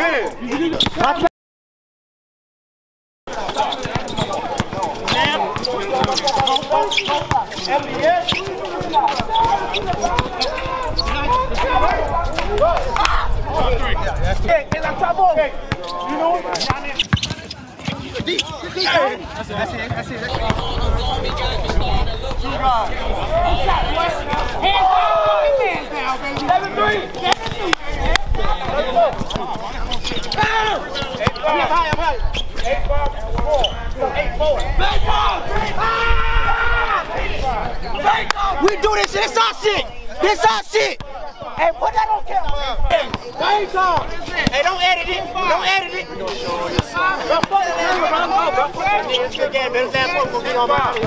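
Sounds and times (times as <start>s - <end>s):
basketball bouncing on court: 3.3s - 11.1s, 15.6s - 18.8s, 19.8s - 21.8s, 26.3s - 32.1s, 46.4s - 47.6s
players shouting: 3.3s - 51.0s.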